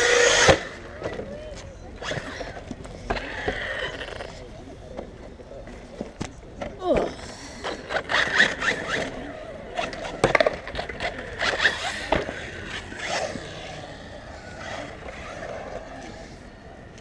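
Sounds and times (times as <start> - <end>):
electric motor whining: 0.0 - 0.9, 7.8 - 17.0
tyres scraping: 6.0 - 17.0.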